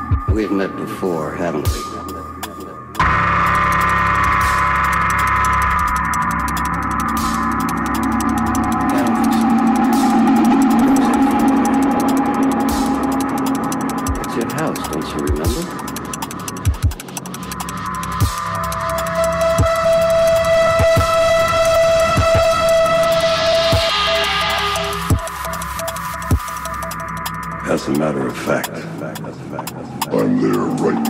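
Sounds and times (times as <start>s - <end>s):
low bass: 0.0s - 31.0s
synth chords: 0.0s - 31.0s
sharp low hits: 3.0s - 27.9s
fast hi-hat ticks: 6.4s - 20.4s.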